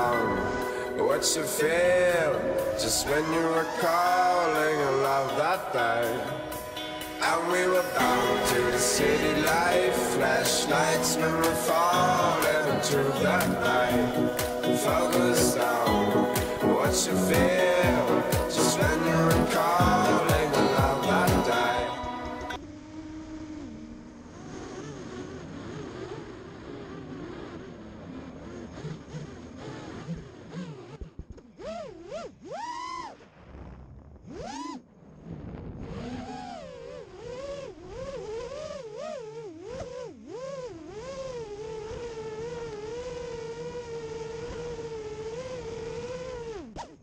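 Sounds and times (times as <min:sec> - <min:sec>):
drone motors whining: 0:00.0 - 0:47.0.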